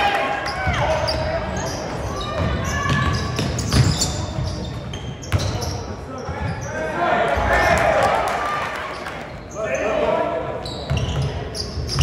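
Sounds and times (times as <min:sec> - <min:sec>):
crowd voices echoing: 0:05.4 - 0:11.5.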